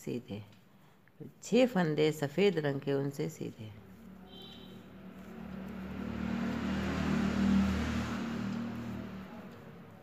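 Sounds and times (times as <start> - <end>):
vehicle passing by: 3.8 - 10.0.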